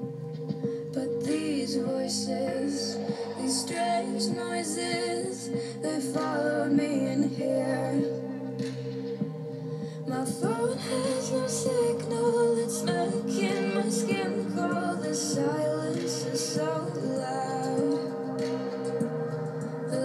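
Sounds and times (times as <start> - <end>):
woman singing pop song: 0.0 - 20.0.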